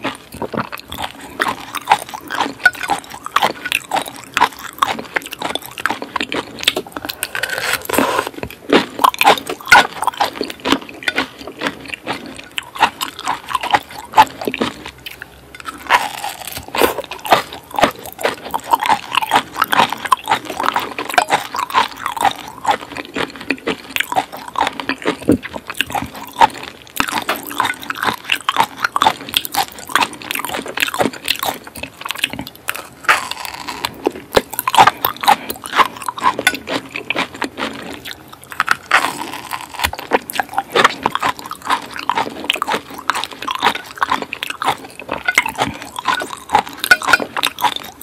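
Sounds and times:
wet chewing mouth clicks: 0.0 - 48.0.

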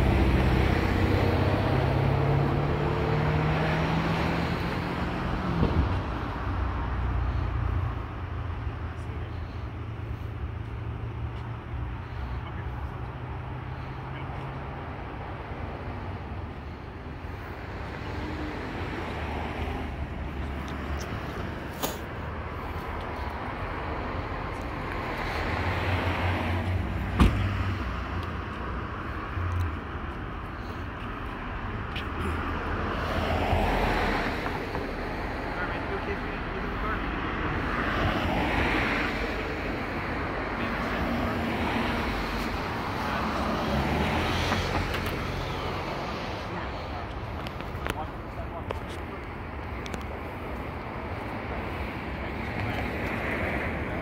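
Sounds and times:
cars passing: 0.0 - 54.0
low steady traffic rumble: 0.0 - 54.0.

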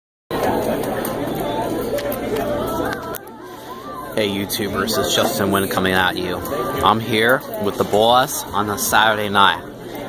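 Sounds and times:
overlapping voices chattering: 0.3 - 10.0.

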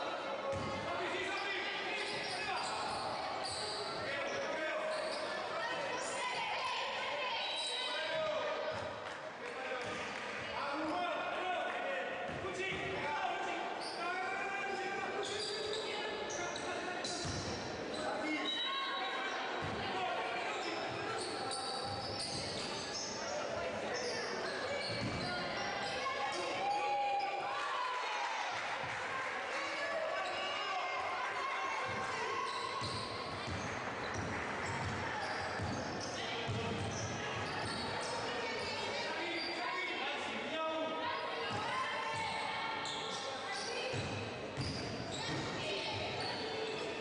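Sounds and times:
voices calling out in echoing hall: 0.0 - 47.0.

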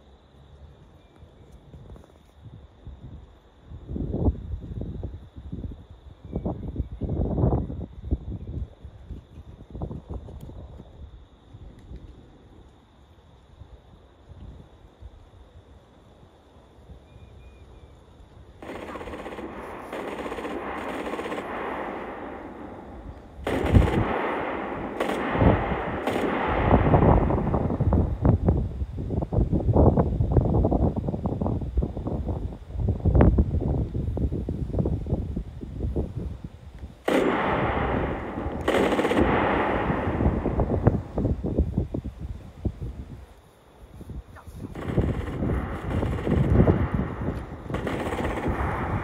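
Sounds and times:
machine-gun fire: 18.6 - 28.0, 37.1 - 41.2, 44.7 - 49.0
dense rumbling noise: 18.7 - 36.1, 37.1 - 43.2, 44.5 - 49.0.

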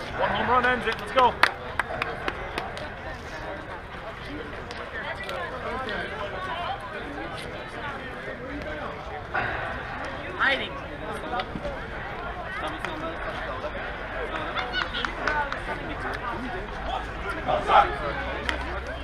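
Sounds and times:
players chattering and calling: 0.0 - 19.0.

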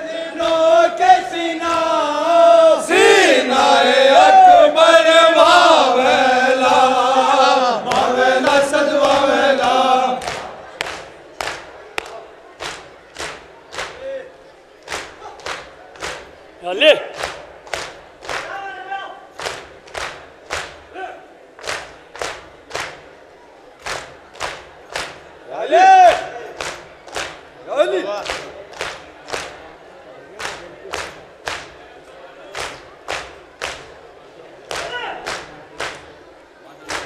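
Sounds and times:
loud voices calling out: 0.0 - 17.4
hands slapping chests: 7.8 - 14.1, 14.8 - 16.4, 17.1 - 18.6, 19.4 - 20.9, 21.6 - 23.1, 23.8 - 25.3, 26.1 - 27.5, 28.2 - 29.7, 30.3 - 31.8, 32.5 - 34.0, 34.6 - 36.1.

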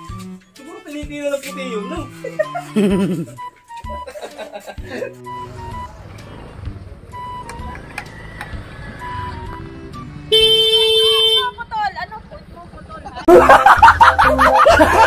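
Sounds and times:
background music with bass line: 0.0 - 10.8, 13.3 - 15.0
loud horn honk: 10.3 - 11.7.

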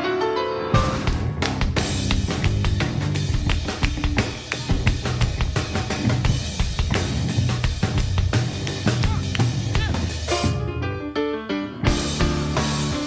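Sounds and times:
live band playing: 0.7 - 11.0, 11.8 - 13.0
drum kit hits: 0.8 - 10.8, 11.9 - 13.0.

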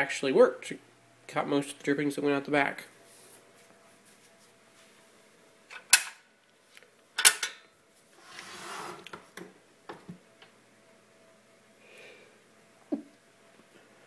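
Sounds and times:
scraping shuffle on countertop: 3.0 - 5.0, 8.0 - 9.2.

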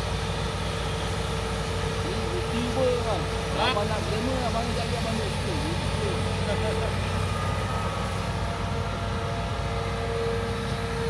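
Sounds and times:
excavator diesel engine under load: 0.0 - 11.0
steady whine: 0.0 - 11.0.

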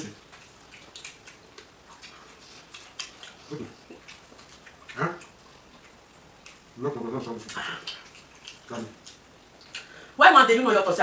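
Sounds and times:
wet chewing and lip-smacking: 0.0 - 10.0.

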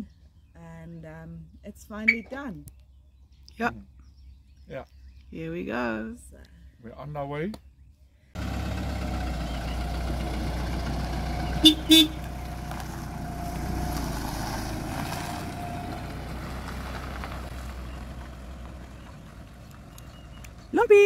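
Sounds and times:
pickup truck engine pulling away: 8.4 - 20.8
car horn toots: 11.5 - 12.4.

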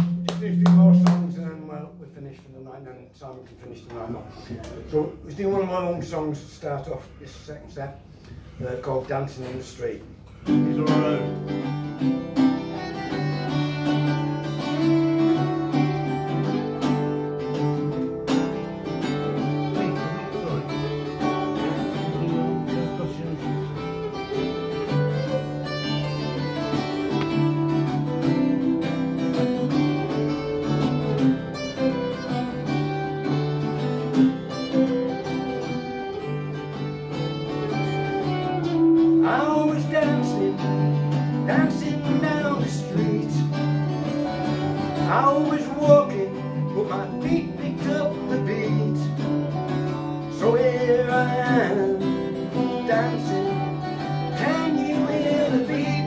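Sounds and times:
acoustic guitars strumming: 0.0 - 2.8, 8.0 - 56.0.

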